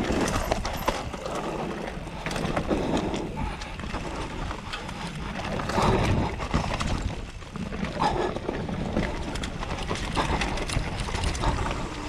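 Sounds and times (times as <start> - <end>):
bike rattling: 0.0 - 12.0
bike tyres rumbling over gravel: 0.0 - 12.0
wheels knocking on stones: 0.0 - 12.0.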